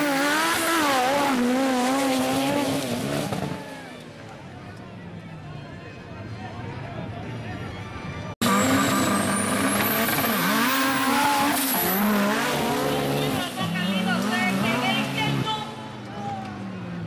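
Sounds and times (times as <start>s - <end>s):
racing truck engines revving: 0.0s - 4.6s, 8.3s - 17.0s.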